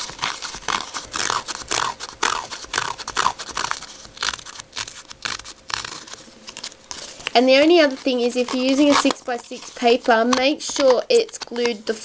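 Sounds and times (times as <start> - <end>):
tool rasping paper edges: 0.0 - 12.0.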